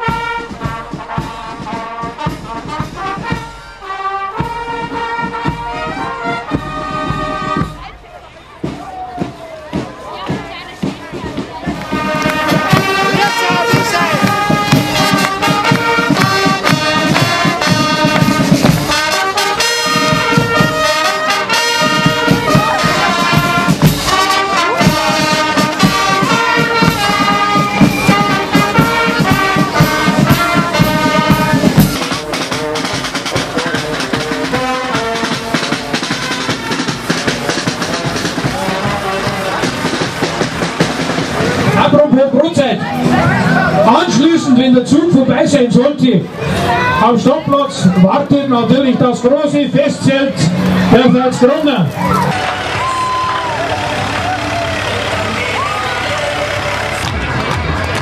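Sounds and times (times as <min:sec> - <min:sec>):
brass band music: 0:00.0 - 0:58.0.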